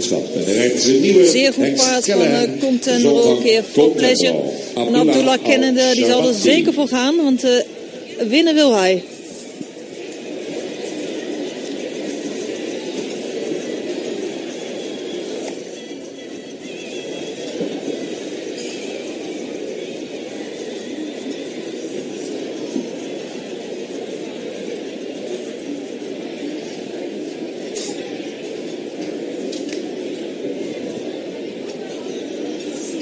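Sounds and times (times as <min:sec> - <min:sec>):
crowd murmur: 0:00.0 - 0:33.0.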